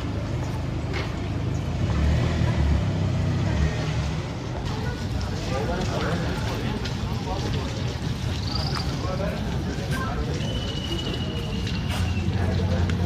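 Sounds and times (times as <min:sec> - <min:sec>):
vehicle engine humming: 0:00.0 - 0:13.0
faint background voices: 0:03.4 - 0:13.0
thin high whistle: 0:10.4 - 0:12.3.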